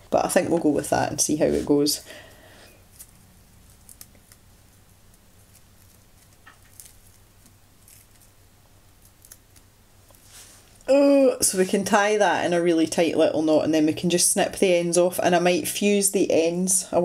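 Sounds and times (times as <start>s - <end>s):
low steady hum: 0.0s - 17.0s
ribbon rustling and ticking: 2.8s - 10.9s.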